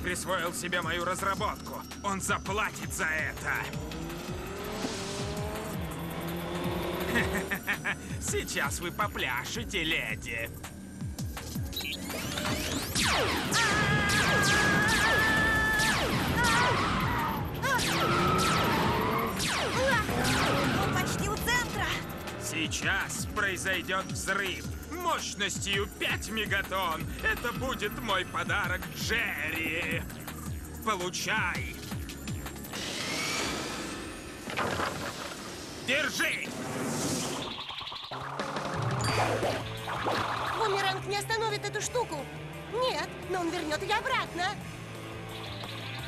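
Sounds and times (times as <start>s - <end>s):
action music: 0.0s - 35.1s, 35.8s - 46.0s.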